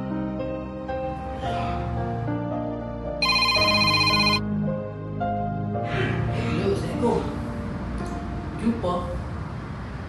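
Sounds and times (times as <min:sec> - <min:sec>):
soft background music: 0:00.0 - 0:10.0
trilling phone ringtone: 0:03.2 - 0:04.4.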